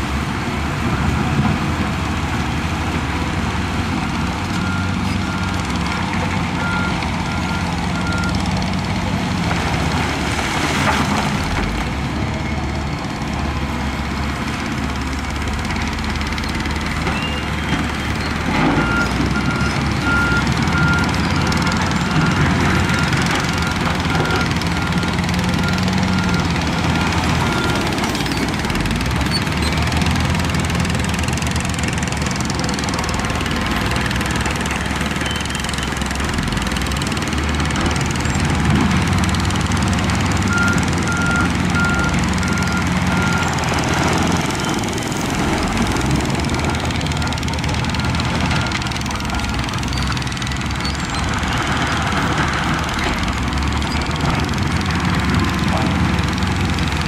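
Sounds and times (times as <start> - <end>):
diesel machines running: 0.0 - 57.0
reversing alarm beeping: 4.5 - 8.5, 40.5 - 43.6.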